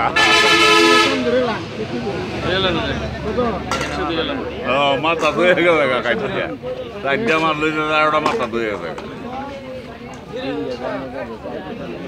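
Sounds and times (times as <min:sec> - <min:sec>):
vehicle horn blaring: 0:00.0 - 0:01.6
voices talking: 0:00.0 - 0:12.0.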